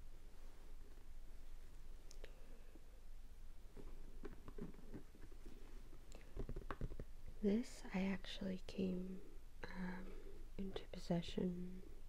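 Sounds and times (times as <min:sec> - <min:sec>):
hands handling plastic box: 0:03.8 - 0:07.1.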